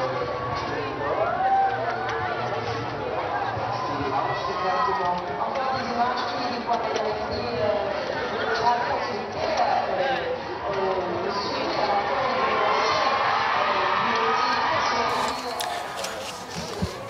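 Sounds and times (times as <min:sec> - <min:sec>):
crowd calling out and cheering: 0:11.9 - 0:17.0.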